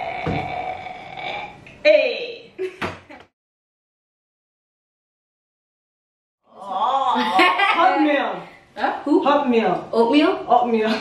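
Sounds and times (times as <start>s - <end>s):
short vocal sounds: 0.0s - 1.7s
vocal sound falling in pitch: 0.0s - 1.7s.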